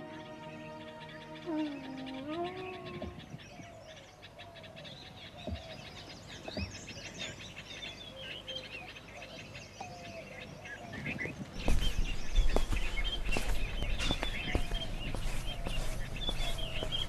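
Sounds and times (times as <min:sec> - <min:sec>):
wind instrument note: 0:00.0 - 0:03.2
birds chirping: 0:00.0 - 0:17.0.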